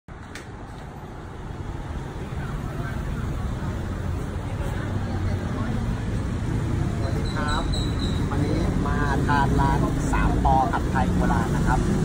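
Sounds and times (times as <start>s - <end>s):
low rumble of city traffic: 0.1s - 12.0s.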